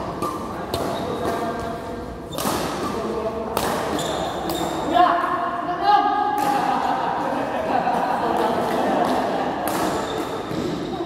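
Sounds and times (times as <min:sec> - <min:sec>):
racket hitting shuttlecock: 0:00.0 - 0:01.7, 0:02.3 - 0:04.9, 0:06.3 - 0:06.9, 0:08.4 - 0:10.9.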